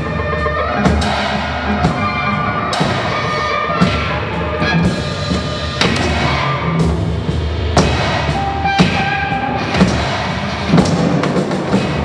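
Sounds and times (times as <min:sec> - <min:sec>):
drum hits: 0:05.4 - 0:12.0.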